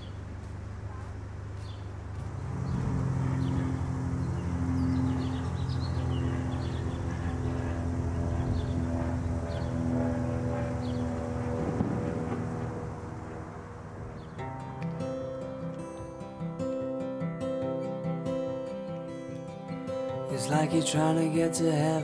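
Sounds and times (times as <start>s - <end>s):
small birds chirping: 0.0s - 13.0s, 13.6s - 14.8s
low drone of held tones: 2.0s - 22.0s.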